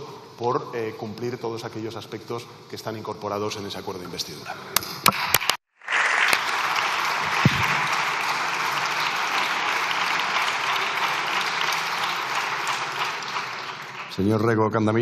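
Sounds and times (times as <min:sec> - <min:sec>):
people applauding: 0:05.1 - 0:14.4.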